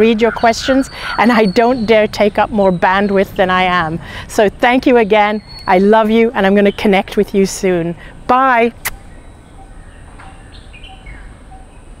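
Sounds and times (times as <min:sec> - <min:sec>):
low steady rumble: 0:00.0 - 0:11.5
birds chirping: 0:00.0 - 0:12.0.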